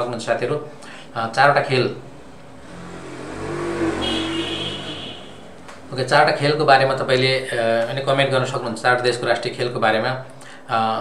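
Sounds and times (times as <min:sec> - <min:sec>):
vehicle passing by: 0:02.2 - 0:06.0.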